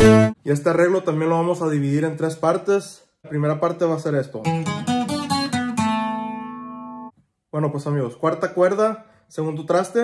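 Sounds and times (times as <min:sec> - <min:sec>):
acoustic guitar picking: 0:00.0 - 0:00.4, 0:04.5 - 0:07.1.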